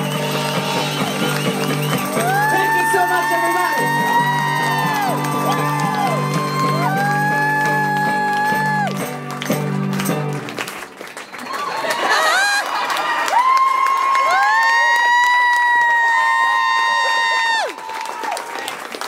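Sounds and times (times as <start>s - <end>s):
audience cheering and whooping: 0.0s - 9.1s, 11.3s - 19.0s
audience clapping: 0.0s - 19.0s.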